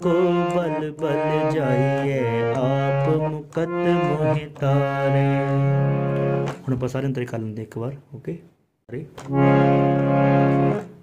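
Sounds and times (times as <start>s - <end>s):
harmonium melody over drone: 0.0s - 6.6s, 9.3s - 11.0s.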